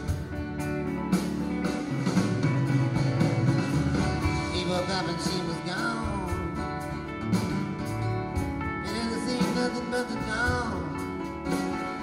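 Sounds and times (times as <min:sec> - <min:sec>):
live rock band music: 0:00.0 - 0:12.0.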